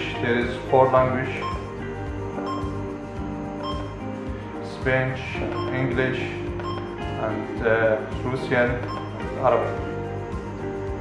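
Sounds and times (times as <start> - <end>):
background music with soft beat: 0.0 - 11.0.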